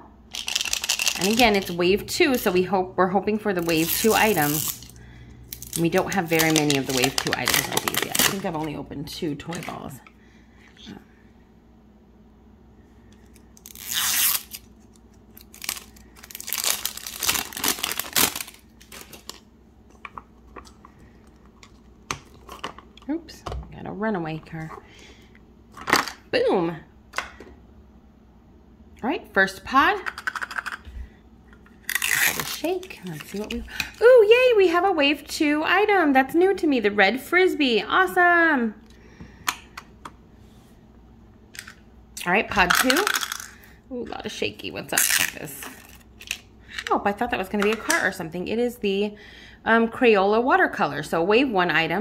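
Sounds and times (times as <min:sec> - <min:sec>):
plastic shrink wrap tearing: 0:00.3 - 0:01.7, 0:03.6 - 0:08.7, 0:13.6 - 0:19.5, 0:31.8 - 0:33.6, 0:45.0 - 0:46.5.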